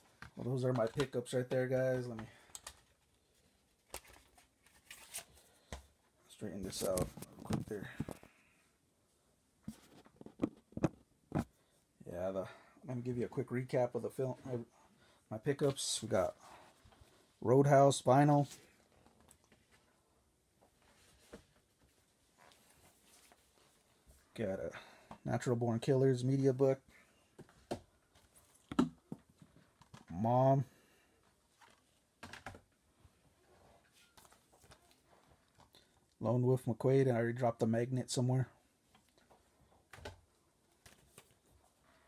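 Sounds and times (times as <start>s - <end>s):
plastic cases knocking and clicking: 7.0s - 8.2s, 10.0s - 11.5s.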